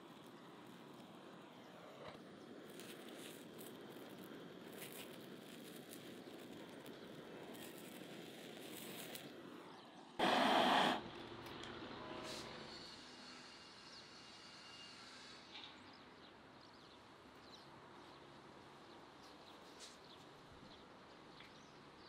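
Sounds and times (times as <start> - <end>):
light crackles: 0.0 - 10.2
gas torch hissing: 0.0 - 11.2.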